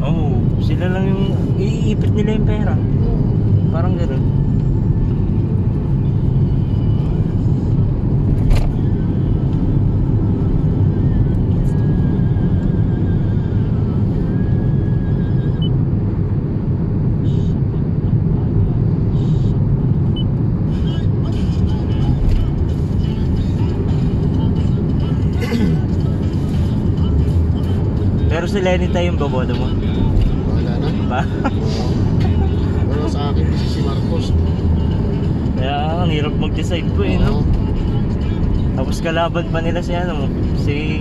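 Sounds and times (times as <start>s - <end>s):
car engine and tyres rumble: 0.0s - 41.0s.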